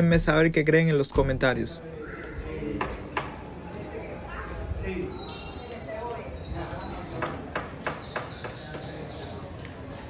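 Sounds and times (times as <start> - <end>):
faint distant voices: 1.4 - 10.0.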